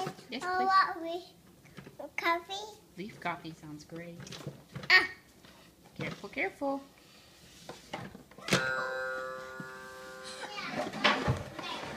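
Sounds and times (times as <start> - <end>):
musical toy chime: 8.5 - 10.6.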